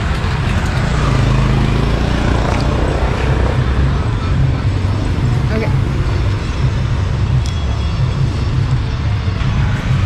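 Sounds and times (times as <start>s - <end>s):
motor vehicle humming: 0.0s - 10.0s
road traffic noise: 0.0s - 10.0s.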